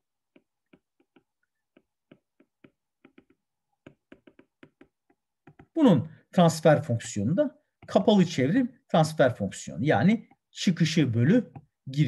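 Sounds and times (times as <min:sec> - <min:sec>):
stylus tapping on glass screen: 0:00.3 - 0:06.0, 0:06.6 - 0:08.6, 0:09.9 - 0:11.8.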